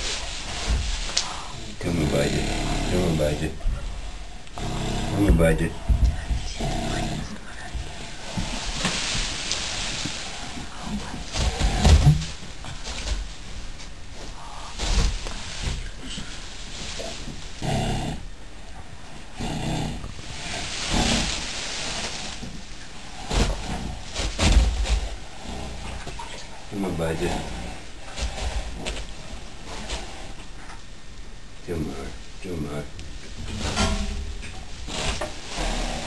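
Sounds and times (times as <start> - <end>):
animal breathing heavily: 1.2 - 8.9, 24.9 - 30.6
animal grunting: 1.4 - 8.6, 10.4 - 12.9, 17.1 - 18.3, 19.3 - 21.4, 24.9 - 28.9, 34.9 - 36.0.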